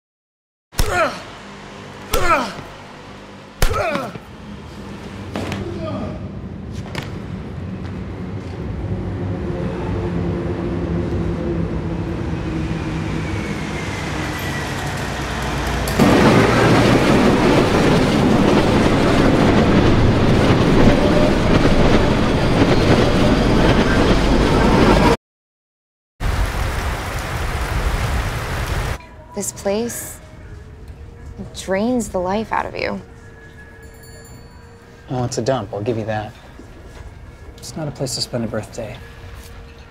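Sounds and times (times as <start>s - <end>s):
low rumble with humming tones: 0.8s - 13.8s, 26.4s - 39.9s
loud dense roar: 2.0s - 25.2s.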